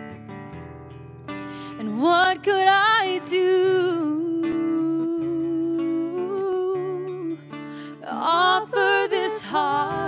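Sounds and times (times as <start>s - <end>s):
acoustic guitar: 0.0s - 10.0s.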